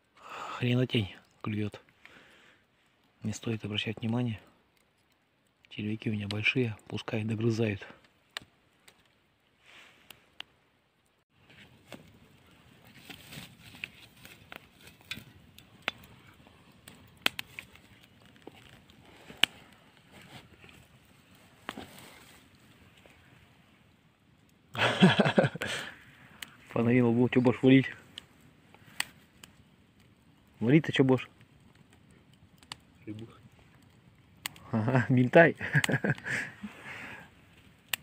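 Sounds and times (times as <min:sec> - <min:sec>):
rustling in dry grass: 0:11.4 - 0:24.0.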